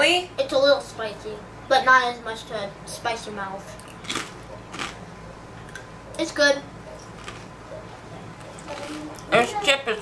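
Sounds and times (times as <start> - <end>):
person chewing crisp cracker: 3.8 - 5.0, 7.0 - 7.5.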